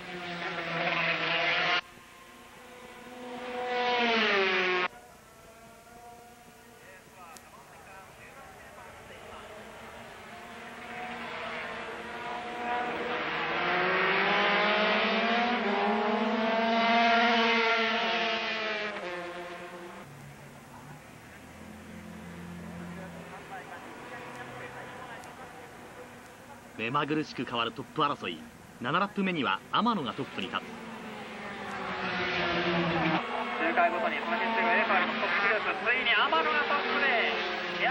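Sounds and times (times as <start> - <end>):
racing motorcycles passing: 0.0 - 6.8, 7.5 - 37.9.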